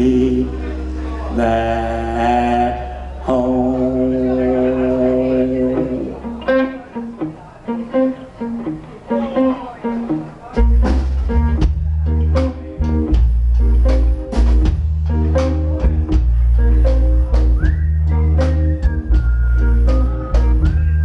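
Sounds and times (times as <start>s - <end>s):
blues band playing: 0.0s - 21.0s
electric guitar single notes: 0.0s - 21.0s.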